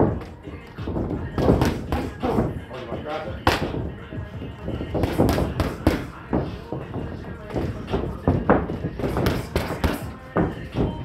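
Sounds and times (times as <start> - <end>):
boxing gloves punching pads: 0.0 - 2.6, 3.4 - 3.9, 4.6 - 11.0.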